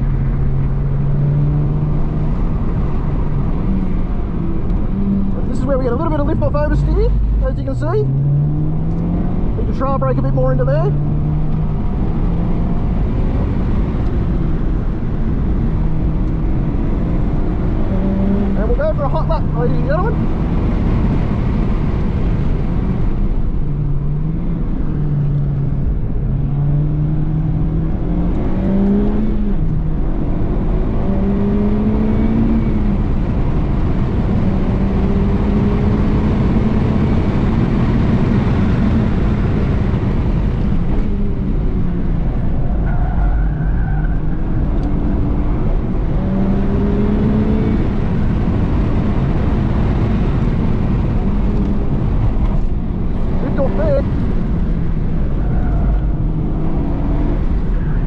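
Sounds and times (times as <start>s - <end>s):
car engine under hard driving: 0.0s - 58.0s
road and wind noise: 0.0s - 58.0s.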